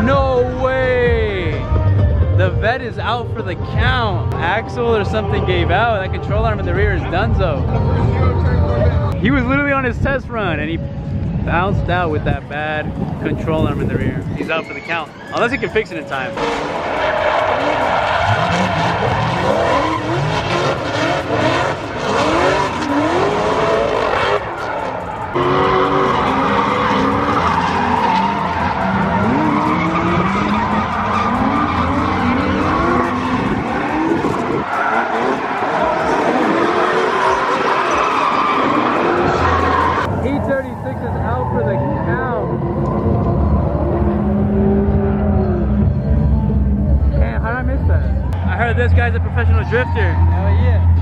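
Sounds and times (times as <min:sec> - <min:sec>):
car engines revving: 0:00.0 - 0:51.0
tyres squealing: 0:14.3 - 0:42.9.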